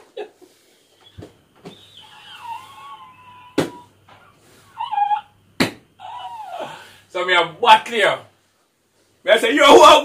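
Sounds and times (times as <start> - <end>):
high-pitched whining cries: 1.0 - 5.4, 6.0 - 7.0
sharp slaps: 3.6 - 3.8, 5.6 - 5.9.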